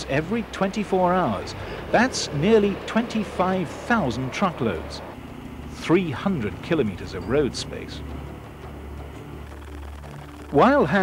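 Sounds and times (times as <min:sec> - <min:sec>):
heavy machinery drone: 0:00.0 - 0:11.0.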